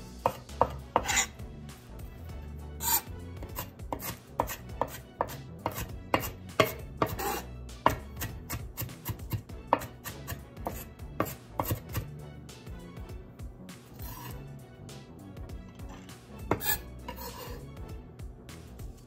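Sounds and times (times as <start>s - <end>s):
knife chopping on wooden board: 0.2s - 1.3s, 2.8s - 12.1s, 16.4s - 17.6s.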